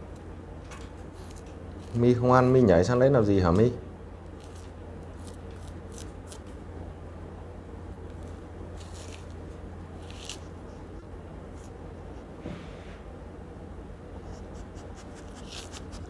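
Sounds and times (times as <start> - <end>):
steady low hum: 0.0 - 16.0
orange peel tearing: 4.3 - 6.6, 8.1 - 10.7.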